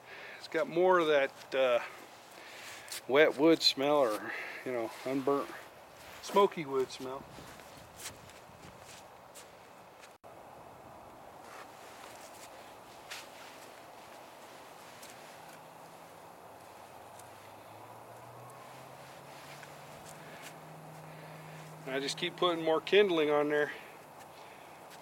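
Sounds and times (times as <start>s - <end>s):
fire crackling: 11.4s - 22.2s.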